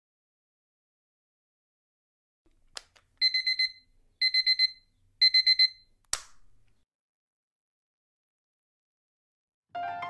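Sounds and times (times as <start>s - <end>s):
electronic alarm beeping: 3.2s - 5.9s.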